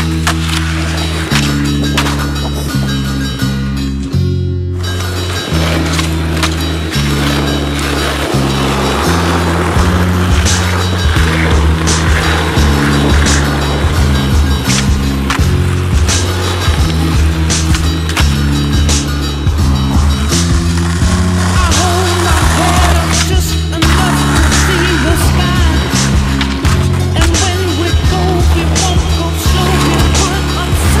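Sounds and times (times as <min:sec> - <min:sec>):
skateboard clacks: 0:00.0 - 0:03.4, 0:04.8 - 0:31.0
music with bass line: 0:00.0 - 0:31.0
skateboard wheels rolling on pavement: 0:00.0 - 0:31.0.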